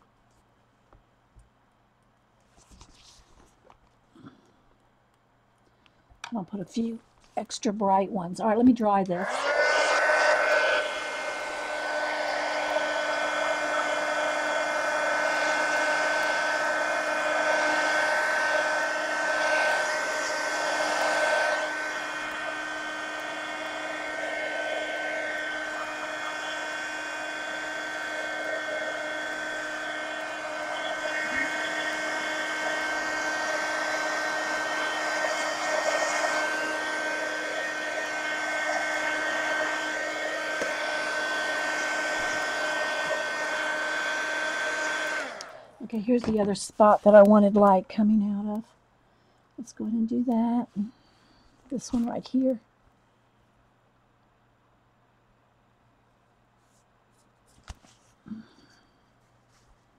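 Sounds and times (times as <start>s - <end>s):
hot-air dryer fan whine: 9.0s - 47.8s, 57.8s - 59.0s.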